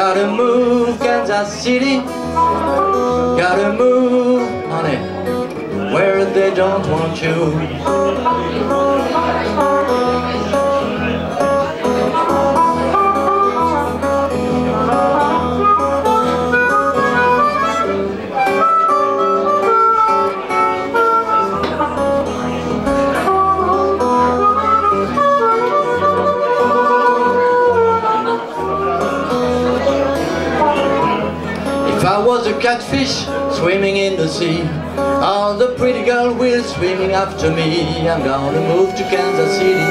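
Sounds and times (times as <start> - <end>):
acoustic guitar accompaniment: 0.0 - 39.9
blues harmonica melody: 0.0 - 39.9.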